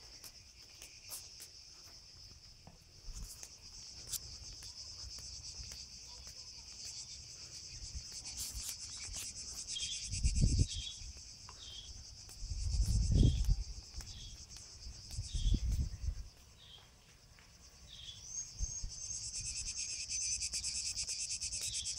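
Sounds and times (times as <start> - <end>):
cicadas buzzing: 0.0 - 21.9.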